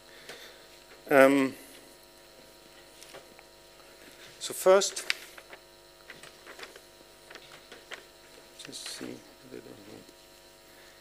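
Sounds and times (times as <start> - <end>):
steady electrical hum: 0.0 - 11.0
paper rustling and clicks: 2.9 - 3.5, 4.9 - 9.2.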